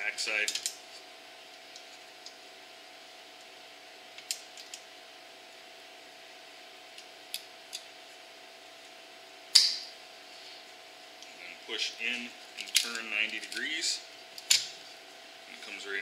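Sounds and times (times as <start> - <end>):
faint steady hum: 0.0 - 16.0.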